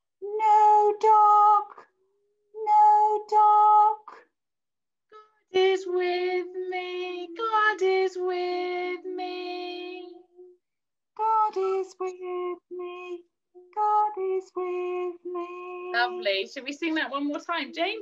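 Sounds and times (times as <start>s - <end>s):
woman and child singing: 0.2s - 1.8s, 2.6s - 4.2s, 5.6s - 10.3s, 11.2s - 18.0s.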